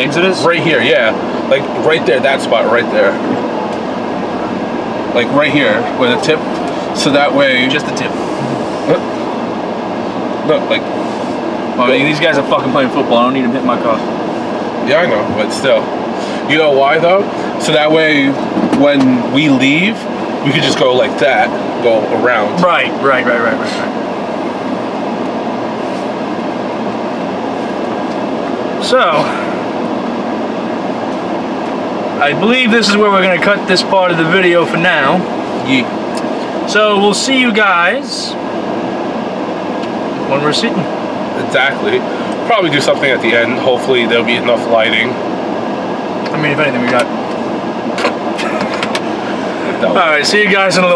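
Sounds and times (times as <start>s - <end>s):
car air conditioning fan blowing: 0.0s - 50.9s.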